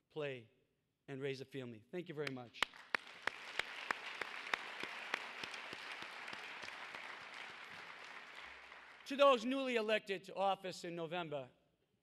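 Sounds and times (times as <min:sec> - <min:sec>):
sharp individual claps: 0:02.2 - 0:09.3
audience applauding: 0:02.6 - 0:09.7.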